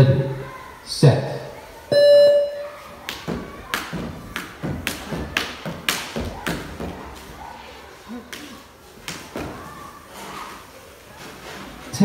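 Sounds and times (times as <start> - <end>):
skipping rope slapping floor: 3.1 - 7.0.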